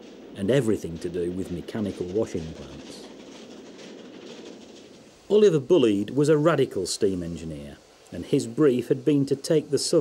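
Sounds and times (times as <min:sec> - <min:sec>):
steam train running: 0:00.0 - 0:10.0.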